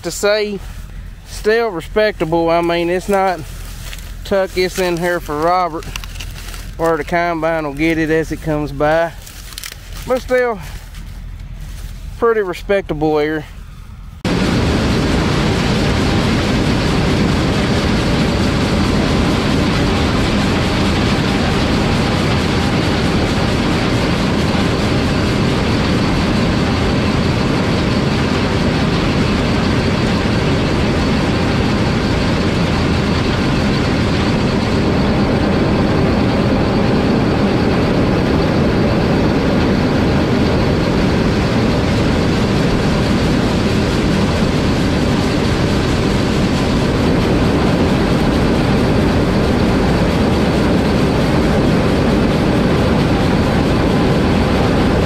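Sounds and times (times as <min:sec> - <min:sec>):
combine harvester running: 0:00.0 - 0:55.0.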